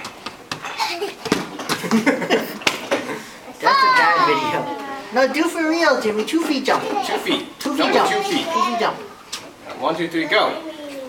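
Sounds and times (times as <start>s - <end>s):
child laughing: 0.7s - 2.5s
young child's voice: 8.1s - 9.1s, 10.3s - 11.0s.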